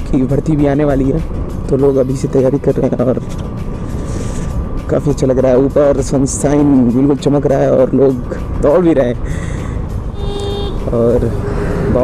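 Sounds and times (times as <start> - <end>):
motorcycle engine rumble: 9.8 - 12.0.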